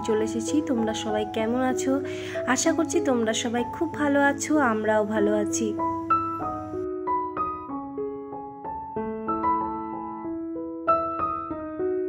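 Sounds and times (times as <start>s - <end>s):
slow gentle piano melody: 0.0s - 12.0s.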